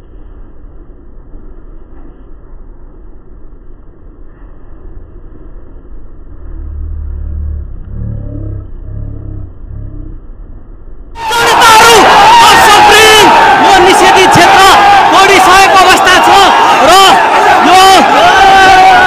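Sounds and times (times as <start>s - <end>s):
muffled pulses: 5.0s - 11.1s
muffled truck engine rumble: 6.3s - 10.6s.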